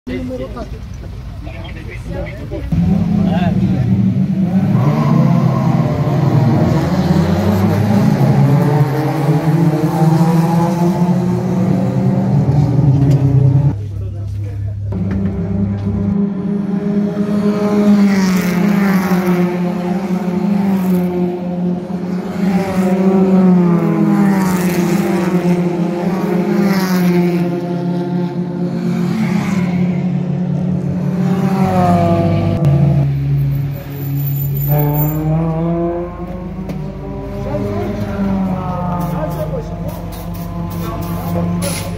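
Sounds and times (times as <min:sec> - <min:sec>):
race car engines passing: 0:00.1 - 0:41.9.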